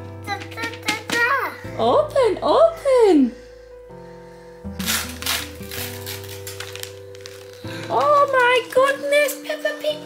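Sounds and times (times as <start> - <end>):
background music of sustained notes: 0.0 - 10.0
wrapping paper tearing: 4.8 - 9.4.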